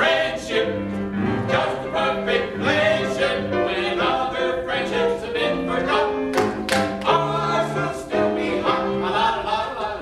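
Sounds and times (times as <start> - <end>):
men and woman singing show tune: 1.4 - 10.0.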